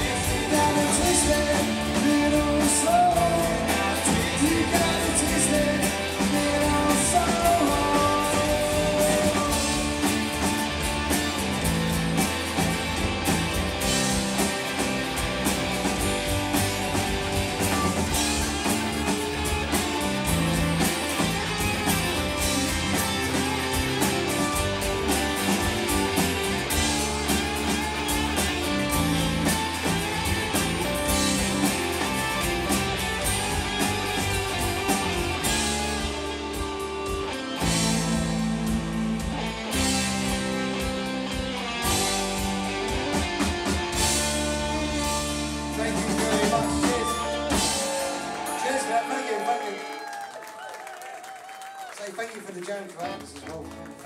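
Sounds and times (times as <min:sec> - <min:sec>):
live rock band playing: 0:00.0 - 0:50.1, 0:53.0 - 0:54.0.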